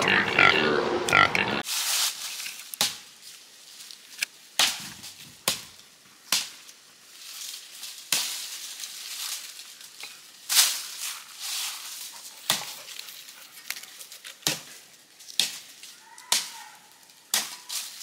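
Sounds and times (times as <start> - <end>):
dry leaves rustling and crunching: 1.6 - 18.0.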